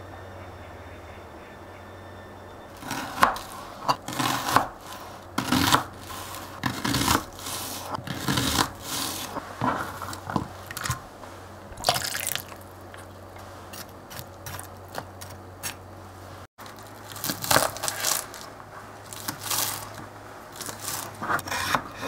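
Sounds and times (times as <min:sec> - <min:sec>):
knife slicing onion on board: 0:02.8 - 0:11.0, 0:20.6 - 0:22.0.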